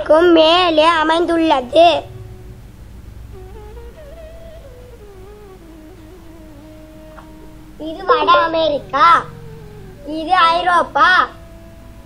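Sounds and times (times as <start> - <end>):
low background rumble: 0.0 - 12.0
person humming: 5.4 - 12.0.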